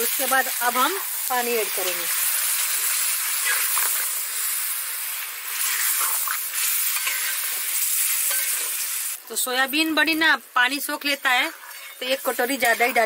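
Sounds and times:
vegetables sizzling in a pan: 0:00.0 - 0:13.0
steel spatula stirring: 0:05.4 - 0:08.9, 0:11.2 - 0:13.0.

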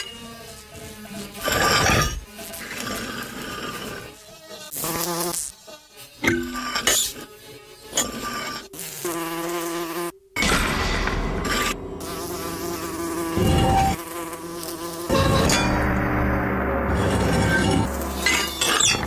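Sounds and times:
housefly buzzing: 0:00.0 - 0:10.4, 0:11.5 - 0:19.0.

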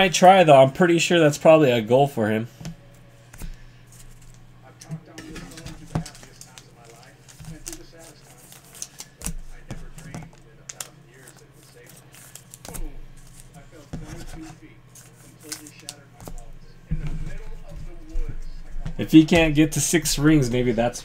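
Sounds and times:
quiet indistinct talking: 0:04.5 - 0:19.4.

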